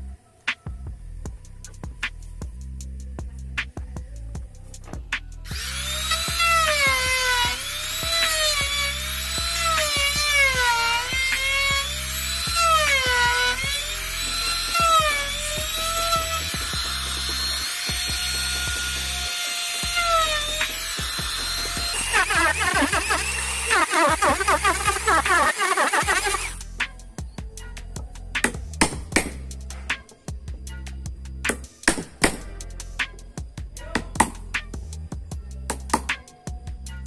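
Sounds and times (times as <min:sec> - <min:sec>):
background music with steady beat: 0:00.0 - 0:37.0
electric router whining: 0:05.5 - 0:26.6.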